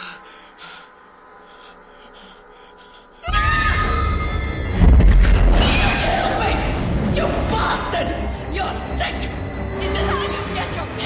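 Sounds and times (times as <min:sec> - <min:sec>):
shrill gliding cry: 0:03.2 - 0:04.7.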